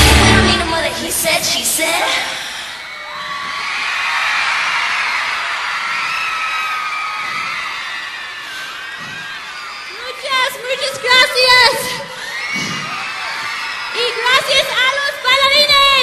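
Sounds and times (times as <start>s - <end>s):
crowd cheering and screaming: 2.0s - 16.0s.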